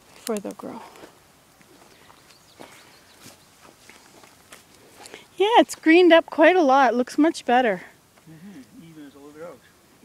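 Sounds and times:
soft footsteps on soil: 0.0 - 6.1.

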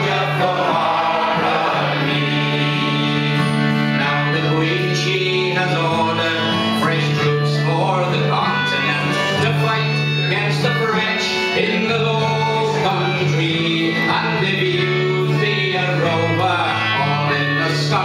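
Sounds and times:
folk song singing: 0.0 - 18.0.

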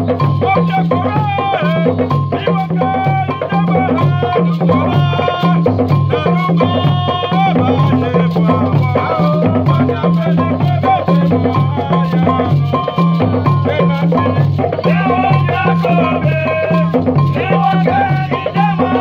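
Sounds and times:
hand drums steady rhythm: 0.0 - 19.0
person singing: 0.4 - 19.0.

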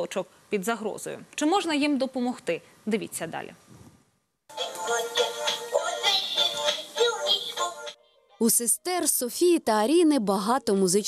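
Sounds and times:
person singing: 4.5 - 7.9.

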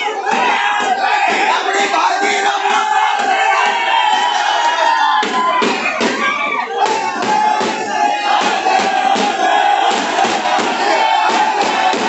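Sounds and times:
crowd shouting and cheering: 0.0 - 12.0
music with a regular beat: 6.9 - 12.0.

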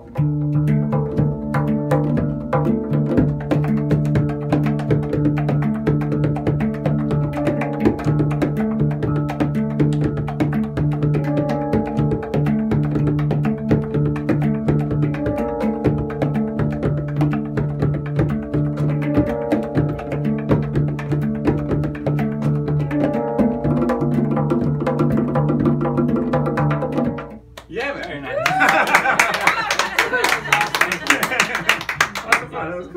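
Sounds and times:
handpan notes ringing: 0.1 - 27.4.

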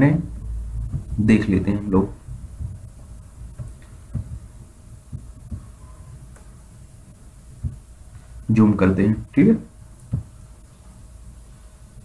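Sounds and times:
soft low thumps: 0.0 - 8.5, 9.2 - 12.0
steady low hum: 0.0 - 12.0.

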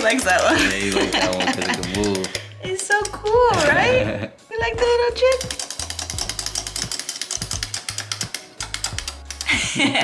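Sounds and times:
toy motor clicking: 0.0 - 3.7, 5.2 - 9.5.

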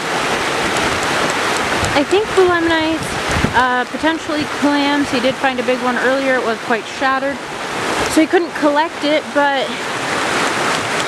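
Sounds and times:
creek water rushing: 0.0 - 11.0.

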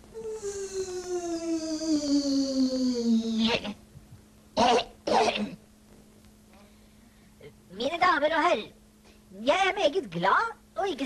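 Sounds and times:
long tone sliding down: 0.2 - 3.5
person coughing: 4.6 - 5.6.

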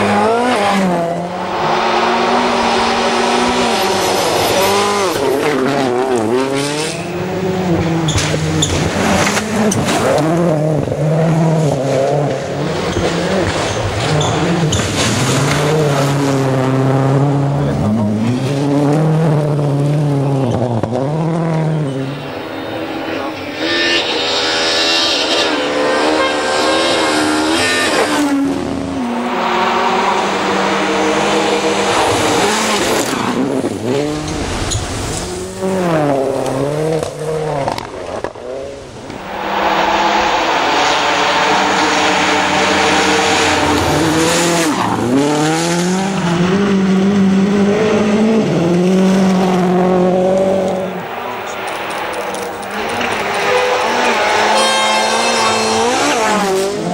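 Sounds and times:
rally car engines at full throttle: 0.0 - 56.9.

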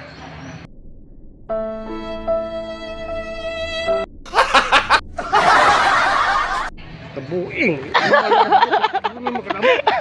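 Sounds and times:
burst of laughter: 4.3 - 6.7, 8.0 - 10.0.

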